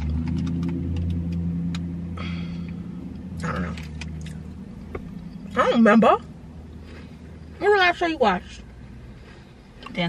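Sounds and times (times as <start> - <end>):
car engine hum from inside: 0.0 - 10.0.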